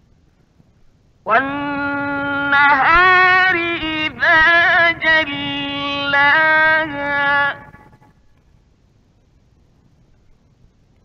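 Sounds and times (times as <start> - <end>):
faint background noise: 0.0 - 11.0
man's melodic recitation: 1.3 - 8.0.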